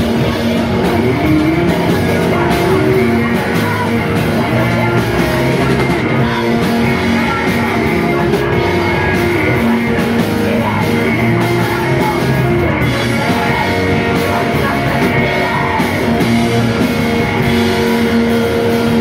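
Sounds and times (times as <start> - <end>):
distorted electric guitars: 0.0 - 19.0
driving drum kit: 0.0 - 19.0.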